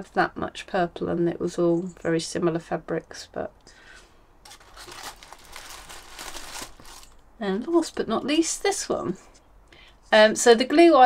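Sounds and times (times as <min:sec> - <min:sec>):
rustling and crinkling handling: 0:04.4 - 0:07.8.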